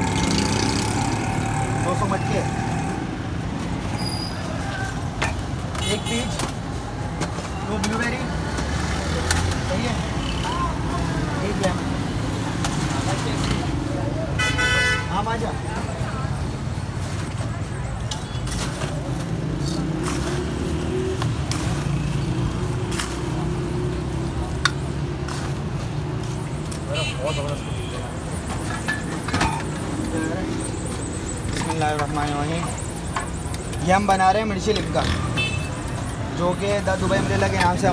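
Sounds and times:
traffic rumble: 0.0s - 37.9s
vehicle horn tooting: 14.4s - 15.1s.

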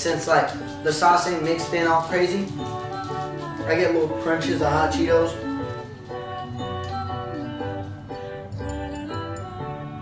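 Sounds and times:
instrumental background music: 0.0s - 10.0s.

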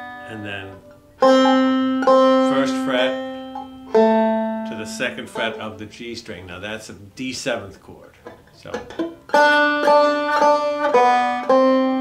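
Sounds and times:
banjo notes picked: 0.0s - 12.0s.

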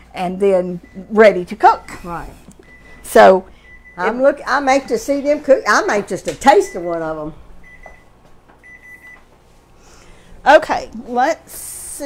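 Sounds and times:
oven timer beeping: 0.7s - 2.0s, 2.6s - 4.9s, 6.4s - 9.3s.

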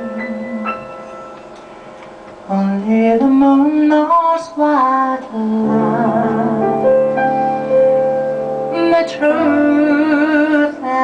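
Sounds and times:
woman singing: 0.0s - 1.0s, 2.5s - 6.9s, 8.7s - 11.0s
held piano tones: 0.0s - 11.0s.

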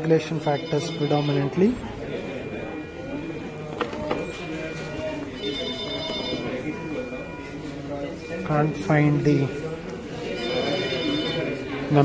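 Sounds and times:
ringing electronic tone: 0.4s - 11.9s.

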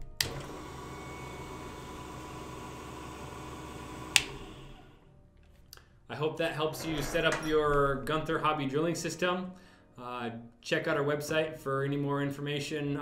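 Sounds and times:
drill press switch click: 0.2s - 0.5s, 4.1s - 4.6s
drill press motor whining: 0.2s - 5.1s.

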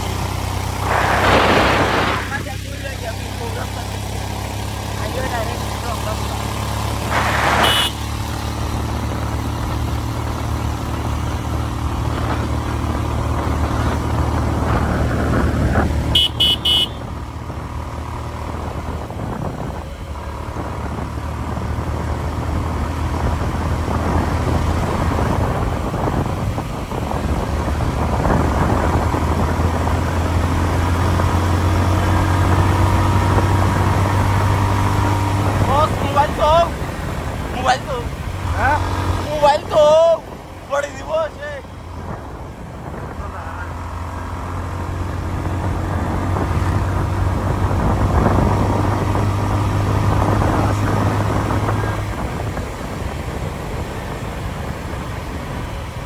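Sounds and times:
road noise: 0.0s - 56.0s
vehicle engine running: 0.0s - 56.0s
vehicle horn toot: 7.5s - 8.1s, 16.1s - 17.1s.

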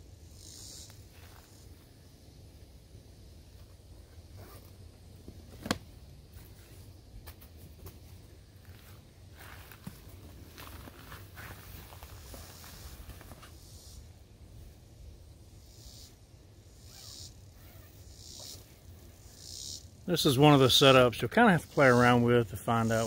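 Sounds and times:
rustling of nylon hammock: 3.6s - 14.0s.

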